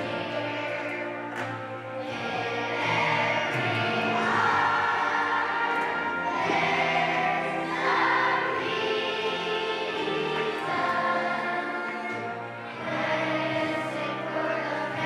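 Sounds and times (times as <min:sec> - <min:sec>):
children's choir singing: 0:00.0 - 0:15.0.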